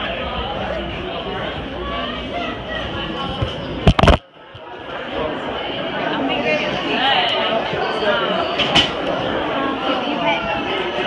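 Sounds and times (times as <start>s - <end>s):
crowd hubbub in a hall: 0.0s - 11.0s.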